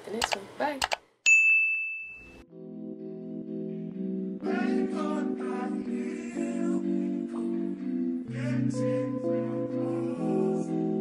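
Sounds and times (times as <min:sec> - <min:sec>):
bright chime ding: 0:01.3 - 0:02.4
background music: 0:02.5 - 0:11.0.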